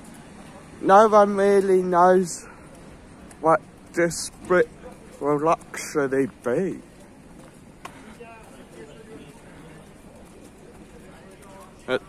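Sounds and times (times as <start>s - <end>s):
outdoor street background: 0.0s - 12.0s.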